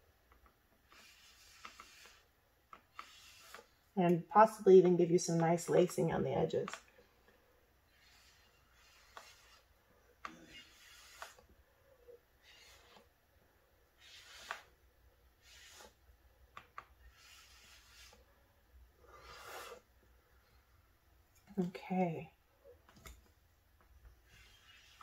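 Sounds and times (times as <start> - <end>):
soft puffs of air: 17.0 - 20.8.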